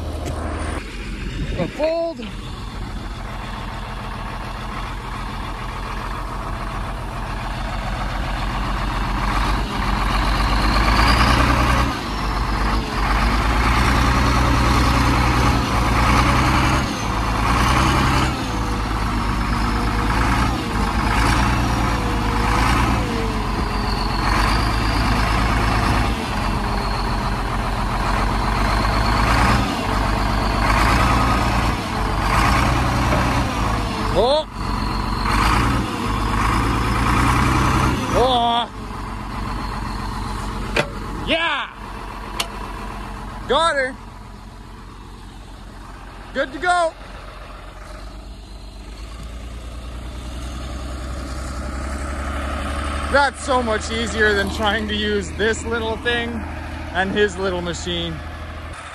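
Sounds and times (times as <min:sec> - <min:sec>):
snowcat engine running: 0:00.0 - 0:58.9.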